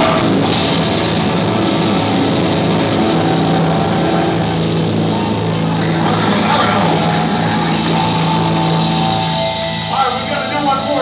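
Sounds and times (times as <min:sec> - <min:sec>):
distorted guitars and bass: 0:00.0 - 0:11.0
drums: 0:00.0 - 0:11.0.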